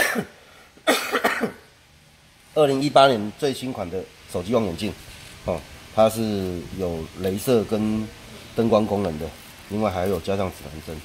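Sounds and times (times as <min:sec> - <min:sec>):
man coughing: 0:00.0 - 0:01.7.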